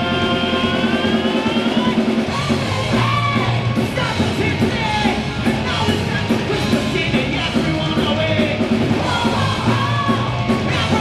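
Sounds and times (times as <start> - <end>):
live hard rock band: 0.0 - 11.0.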